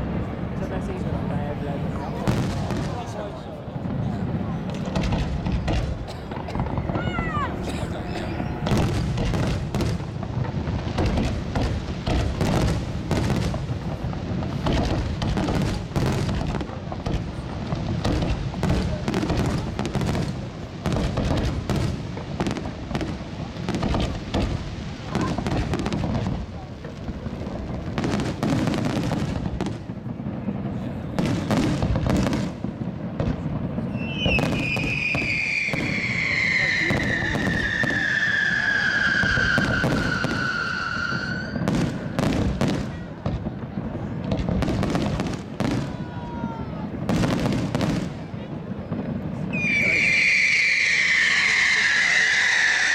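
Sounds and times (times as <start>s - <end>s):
fireworks bangs: 0.0s - 52.9s
falling firework whistle: 33.9s - 42.7s, 49.5s - 52.9s.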